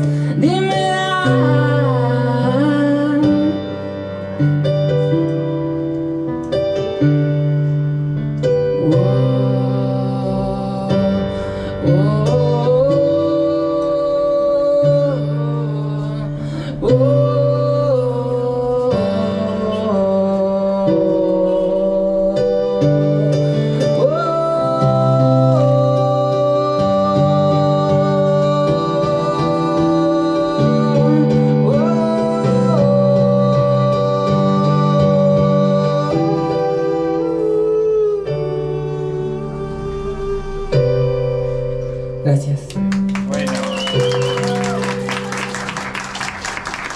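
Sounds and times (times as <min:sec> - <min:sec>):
electronic keyboard chords: 0:00.0 - 0:46.9
man singing long notes: 0:08.8 - 0:41.0.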